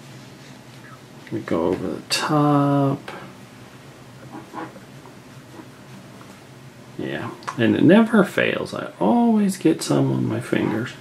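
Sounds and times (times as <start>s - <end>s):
towel rubbing a pen: 4.2s - 4.8s.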